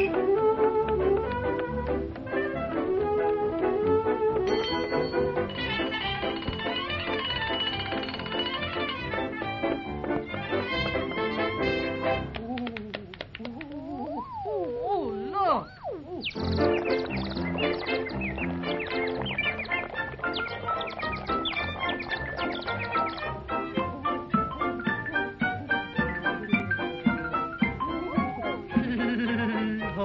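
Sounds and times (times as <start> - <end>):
upbeat band music with plucked strings: 0.0 - 12.4, 16.4 - 30.0
whistled chirps sliding in pitch: 15.5 - 23.4.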